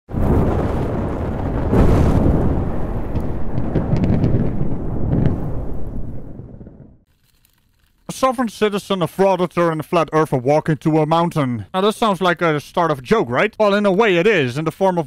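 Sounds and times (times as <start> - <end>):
explosion rumble with crackles: 0.1 - 8.9.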